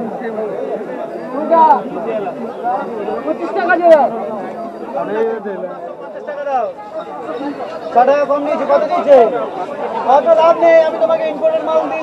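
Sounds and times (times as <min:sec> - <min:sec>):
overlapping indistinct chatter: 0:00.0 - 0:12.0.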